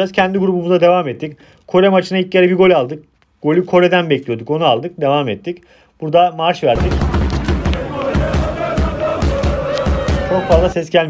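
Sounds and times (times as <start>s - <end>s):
crowd noise: 6.7s - 10.8s
steady drum beat: 6.7s - 10.8s
fans singing a chant: 6.8s - 10.8s.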